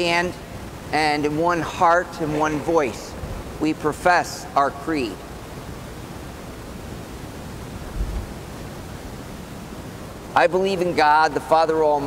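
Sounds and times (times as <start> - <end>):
steady room tone hiss: 0.0 - 12.0.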